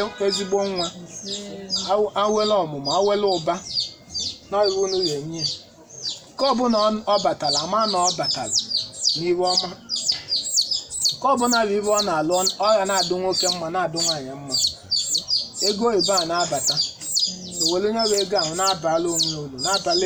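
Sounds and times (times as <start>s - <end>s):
man speaking: 0.0s - 1.1s, 1.9s - 3.7s, 4.5s - 5.6s, 6.4s - 8.6s, 9.2s - 9.9s, 11.2s - 14.8s, 15.6s - 20.0s
small birds chirping: 0.0s - 20.0s.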